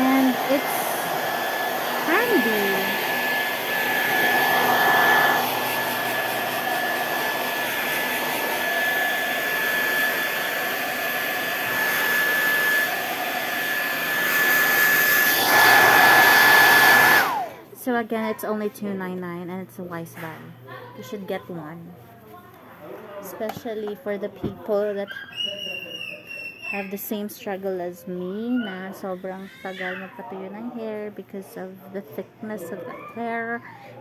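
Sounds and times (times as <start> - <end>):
hair dryer running: 0.0 - 17.6.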